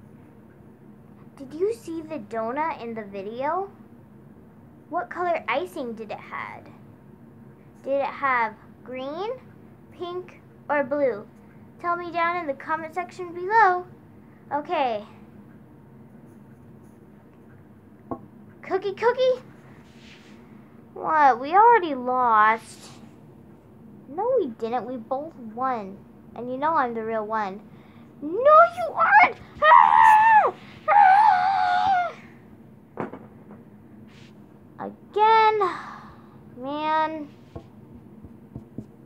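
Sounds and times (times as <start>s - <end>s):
faint steady hiss: 0.0s - 30.9s, 33.6s - 39.0s
person speaking: 28.2s - 31.0s
child crying out high-pitched: 28.8s - 32.3s.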